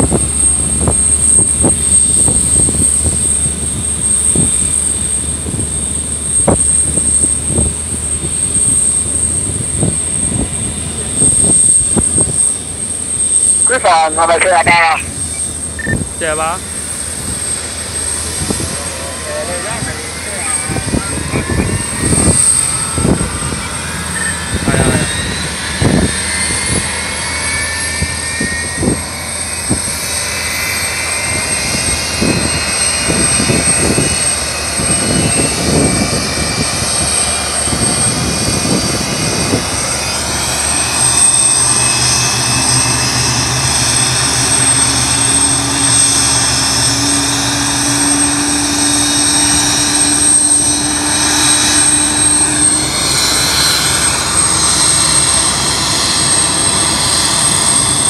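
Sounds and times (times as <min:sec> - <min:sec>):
jet engine whine rising: 0:00.0 - 0:58.0
low engine hum: 0:00.0 - 0:58.0
steady high tone: 0:13.4 - 0:16.7, 0:40.0 - 0:58.0.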